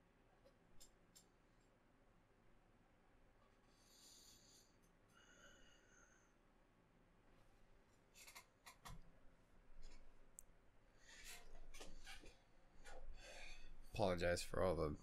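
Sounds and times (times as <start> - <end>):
chair creaking and clicking: 8.2 - 9.0, 11.2 - 13.1.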